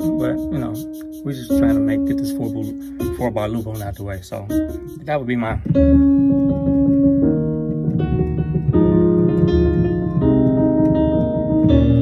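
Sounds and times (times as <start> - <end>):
piano chords on a keyboard: 0.0 - 12.0.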